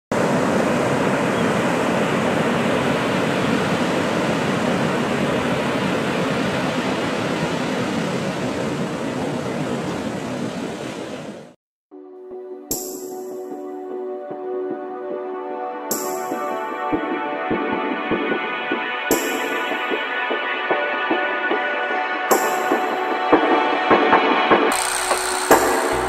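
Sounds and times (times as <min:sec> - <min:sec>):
ocean surf washing onto beach: 0:00.1 - 0:11.6.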